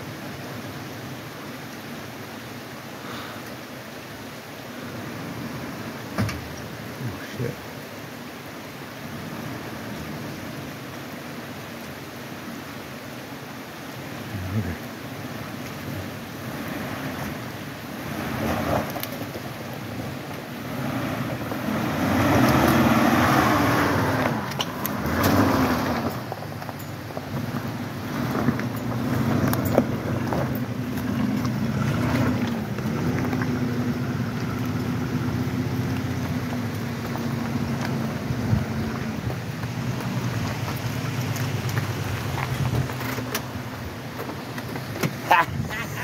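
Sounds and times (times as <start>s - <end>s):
suv engine revving: 14.0s - 46.0s.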